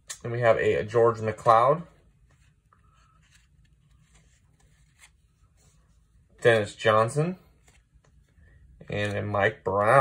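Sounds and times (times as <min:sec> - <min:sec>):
cardboard cards rustling and clicking: 0:02.2 - 0:05.6.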